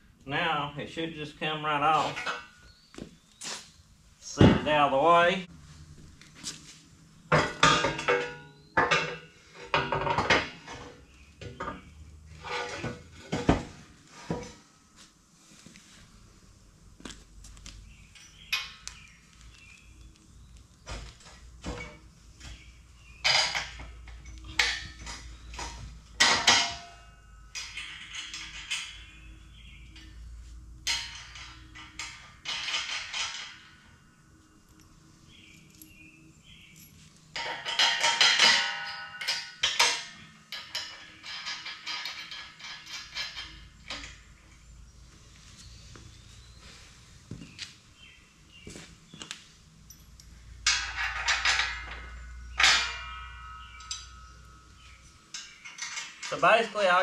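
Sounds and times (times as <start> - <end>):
steel parts and tools clanking: 1.9 - 2.9, 7.3 - 14.7, 18.1 - 19.8, 21.2 - 44.8, 49.9 - 57.0.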